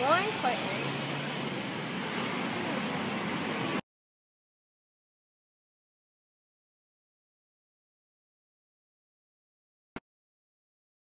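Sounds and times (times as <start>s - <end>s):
low hum of traffic: 0.0s - 3.8s
street noise hiss: 0.0s - 3.8s.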